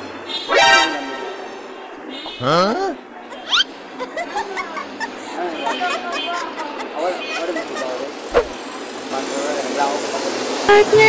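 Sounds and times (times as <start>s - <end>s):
road traffic hum: 1.6s - 11.0s
low voices talking: 2.3s - 3.6s.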